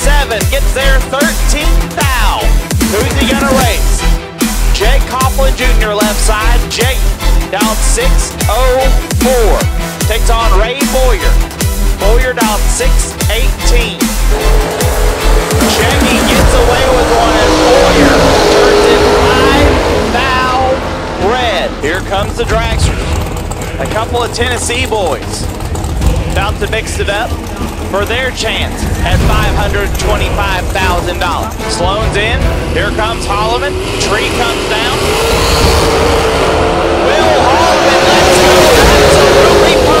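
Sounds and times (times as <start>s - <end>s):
drag cars engine roar: 0.0s - 40.0s
excited voices: 36.6s - 40.0s.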